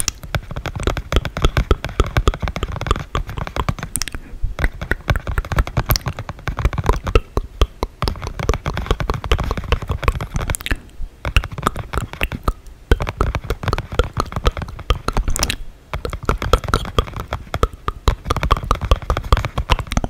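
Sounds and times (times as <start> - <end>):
mouth clicks and pops: 0.0 - 20.0.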